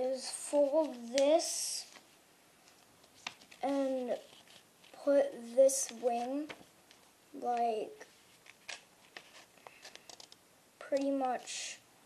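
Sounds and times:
paper crackling: 0.5s - 5.1s, 8.1s - 10.4s.

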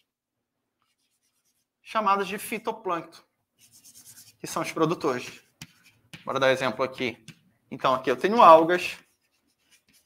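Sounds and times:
chalk scratching on blackboard: 0.8s - 1.8s, 3.6s - 10.0s
man talking: 4.4s - 5.4s, 6.2s - 9.0s.

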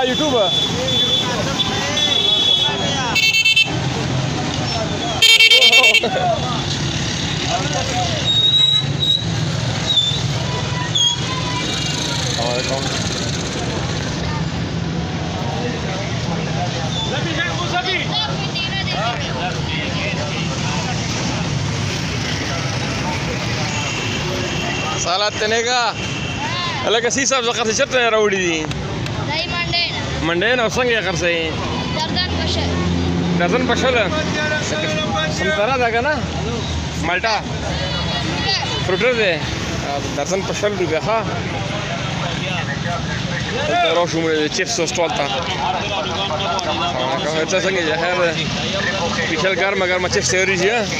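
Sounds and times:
people talking: 0.0s - 8.5s, 10.3s - 50.9s
traffic hum: 0.0s - 50.9s.

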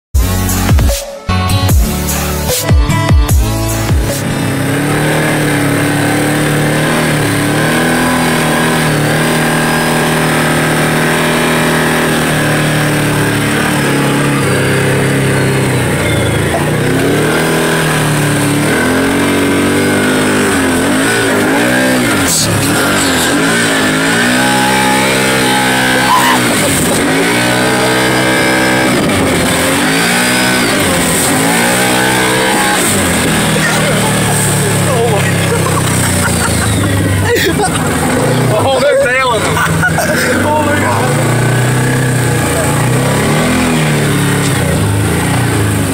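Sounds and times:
vehicle engine revving: 1.6s - 45.9s.

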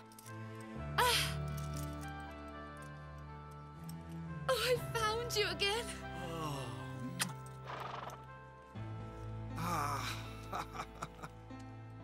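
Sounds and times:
gentle background music: 0.0s - 12.0s
horse whinnying: 7.6s - 8.2s.

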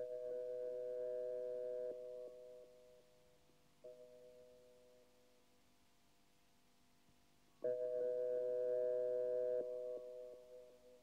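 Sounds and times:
sine-like synthesizer chord: 7.6s - 11.0s.

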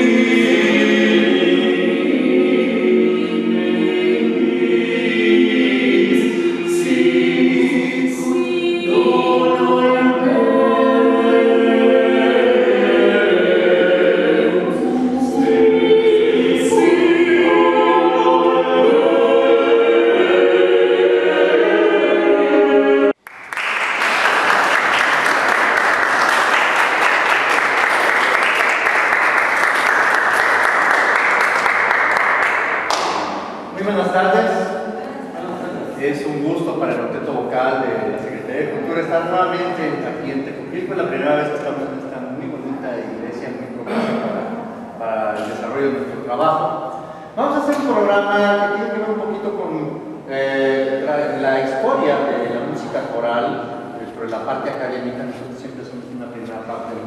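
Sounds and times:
a cappella group singing: 0.0s - 23.2s, 29.7s - 47.4s, 50.0s - 54.4s
audience applause: 23.2s - 33.3s.

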